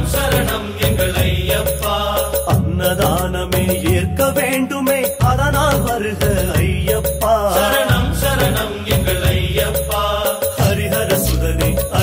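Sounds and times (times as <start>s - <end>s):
man singing: 0.0s - 12.0s
percussion: 0.0s - 12.0s
sustained bass accompaniment: 0.0s - 12.0s.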